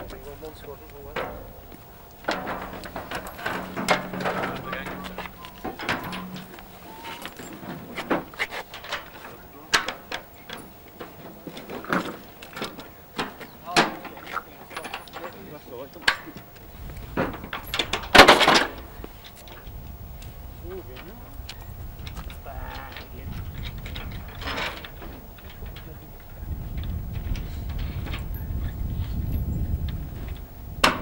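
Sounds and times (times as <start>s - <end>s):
low voices: 0.0s - 17.0s, 20.5s - 29.2s.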